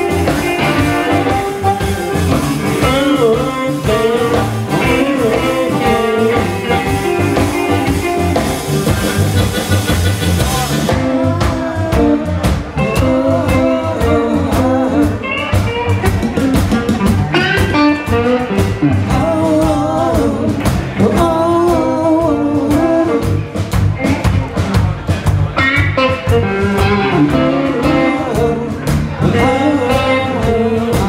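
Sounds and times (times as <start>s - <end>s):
blues harmonica lead: 0.0s - 20.2s, 24.0s - 31.0s
drum kit: 0.0s - 31.0s
electric bass: 0.0s - 31.0s
electric guitars: 0.0s - 31.0s.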